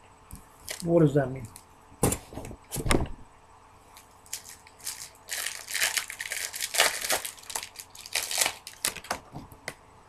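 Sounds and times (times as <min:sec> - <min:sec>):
wrapper crinkling and tearing: 0:00.7 - 0:00.9, 0:04.0 - 0:09.3.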